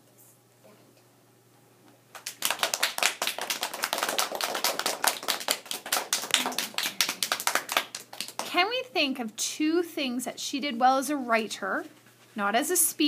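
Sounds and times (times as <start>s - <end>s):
children applauding: 2.1s - 8.5s.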